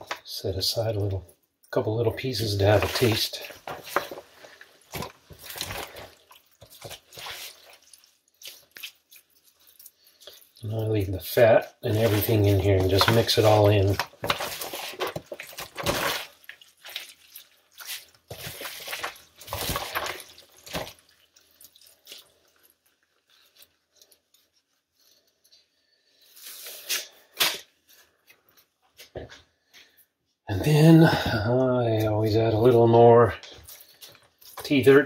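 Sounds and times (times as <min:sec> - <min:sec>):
wet squishing of meat by hand: 0:00.1 - 0:30.3, 0:32.0 - 0:35.0.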